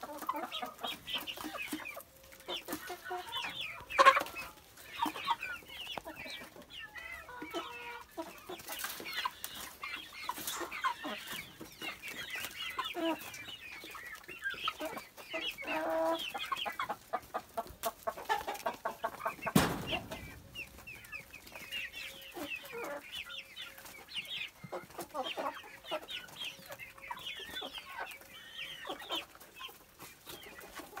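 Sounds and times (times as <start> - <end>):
hens clucking: 0.0 - 31.0
loud thump: 19.5 - 20.6.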